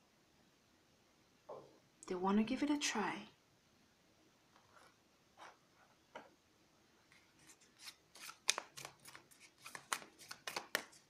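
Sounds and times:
cards rustling and tapping: 7.1s - 11.0s.

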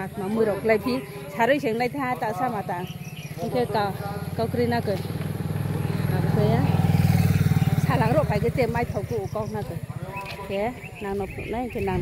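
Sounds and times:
woman talking: 0.0s - 5.1s, 5.9s - 6.8s, 7.8s - 9.8s, 10.4s - 12.0s
vehicle engine droning: 2.8s - 10.3s.

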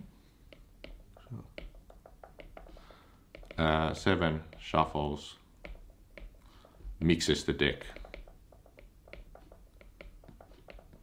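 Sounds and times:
stylus tapping on tablet screen: 0.4s - 11.0s.

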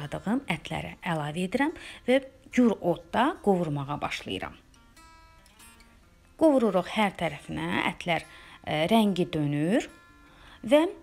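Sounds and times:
faint acoustic guitar music: 0.0s - 11.0s.

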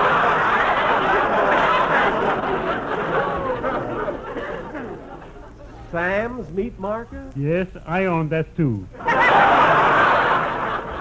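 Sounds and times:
studio audience laughing: 0.0s - 5.9s, 9.0s - 11.0s.

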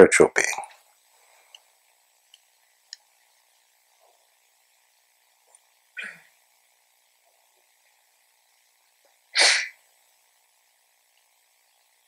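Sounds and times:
loud sneeze: 9.4s - 9.8s.

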